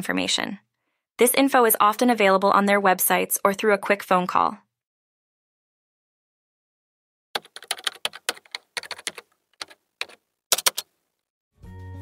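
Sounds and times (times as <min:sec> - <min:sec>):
keyboard key clicks: 0:07.4 - 0:10.9.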